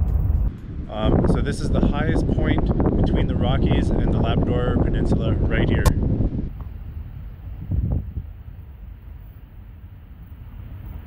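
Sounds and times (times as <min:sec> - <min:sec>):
road and engine rumble: 0:00.0 - 0:11.0.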